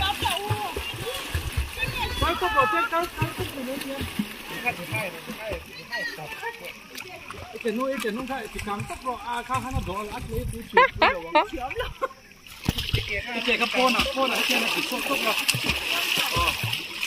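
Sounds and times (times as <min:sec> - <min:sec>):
people talking: 0:00.0 - 0:04.0
pool water splashing: 0:00.0 - 0:17.0.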